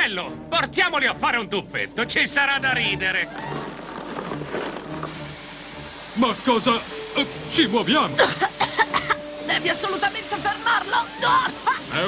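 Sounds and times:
background music: 0:00.0 - 0:12.0
even hiss: 0:01.8 - 0:12.0.

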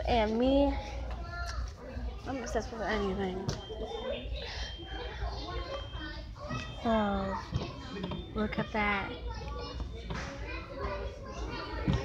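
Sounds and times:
children talking faintly: 0:00.8 - 0:12.0.

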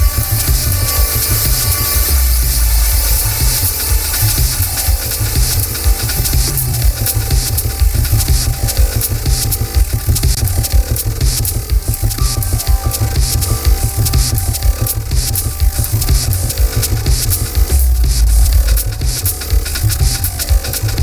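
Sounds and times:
pulsing deep bass: 0:00.0 - 0:21.0
sharp clicking percussion: 0:00.0 - 0:21.0.

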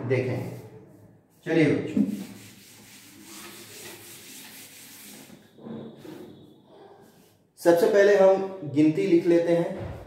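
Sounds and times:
duster wiping chalkboard: 0:00.5 - 0:06.4.

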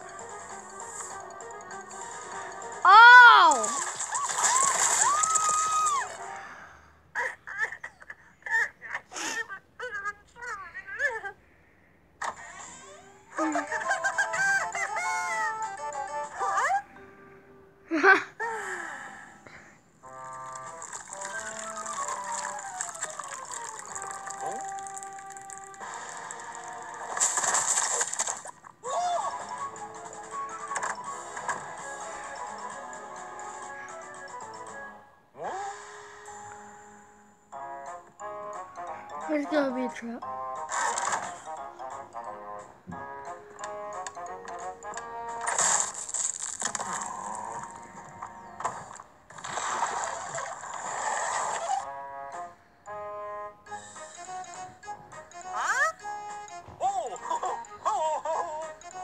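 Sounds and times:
cartoon music: 0:02.7 - 0:06.2, 0:13.0 - 0:16.9, 0:51.6 - 0:59.0
high wavering character cry: 0:02.9 - 0:03.8.

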